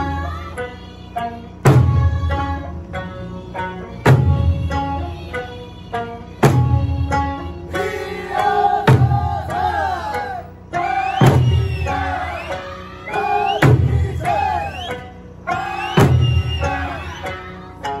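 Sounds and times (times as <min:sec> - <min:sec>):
person singing folk song: 0:00.0 - 0:18.0
barrel drums beating: 0:01.6 - 0:02.4, 0:04.1 - 0:05.0, 0:06.4 - 0:07.3, 0:08.4 - 0:10.0, 0:11.2 - 0:12.1, 0:13.5 - 0:14.4, 0:15.9 - 0:17.0.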